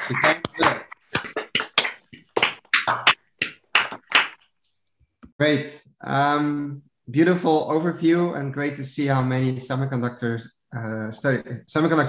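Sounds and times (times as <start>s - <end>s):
hands clapping: 0.0s - 4.5s.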